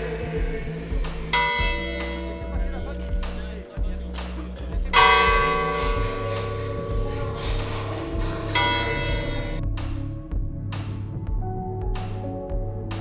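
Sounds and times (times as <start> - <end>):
church bell tolling: 0.0 - 3.9, 4.9 - 9.6.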